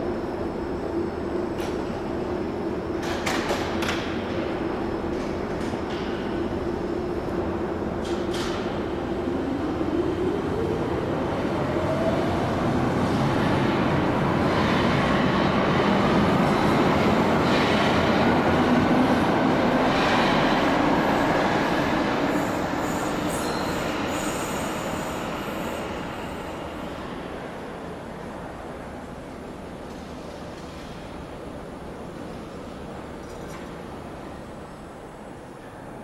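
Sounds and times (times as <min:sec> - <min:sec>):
train running noise: 0:00.0 - 0:36.0.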